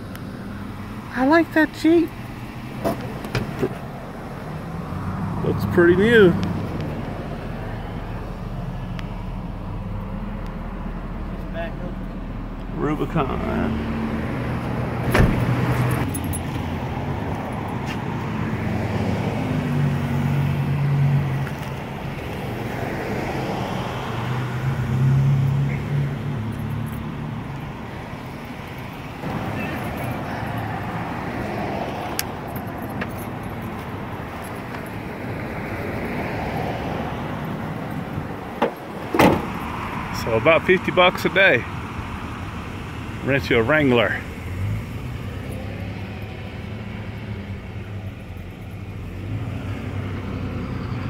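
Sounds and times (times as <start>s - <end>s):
cars passing: 0.0s - 51.0s.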